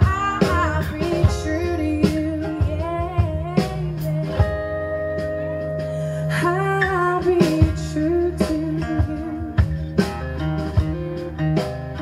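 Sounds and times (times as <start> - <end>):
blues-rock band playing: 0.0 - 12.0.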